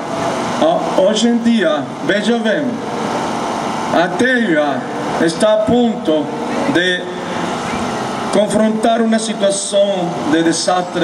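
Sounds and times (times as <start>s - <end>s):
steady background hum: 0.0s - 11.0s
man speaking over a microphone: 0.6s - 2.8s, 3.9s - 7.5s, 8.3s - 11.0s.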